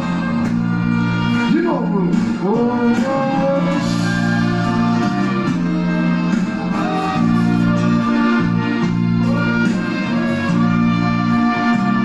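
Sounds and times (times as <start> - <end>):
sustained band chords: 0.0 - 12.0.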